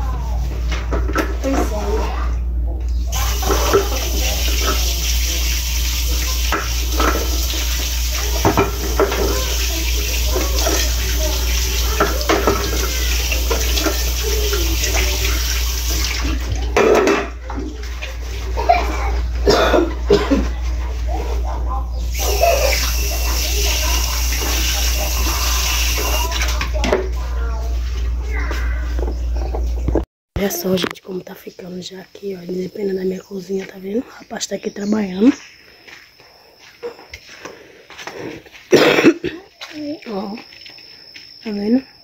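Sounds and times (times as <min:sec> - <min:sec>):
water running from tap: 0:03.1 - 0:18.8, 0:22.1 - 0:26.9
water splashing over pot: 0:03.1 - 0:18.9, 0:22.1 - 0:27.0
dishes knocking against sink: 0:08.4 - 0:09.5, 0:11.9 - 0:14.0, 0:16.6 - 0:17.4.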